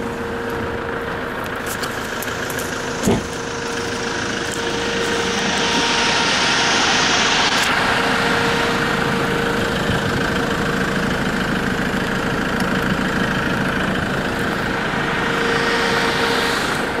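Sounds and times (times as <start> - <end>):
off-road vehicle engine running: 0.0 - 17.0
steady whine: 0.0 - 17.0.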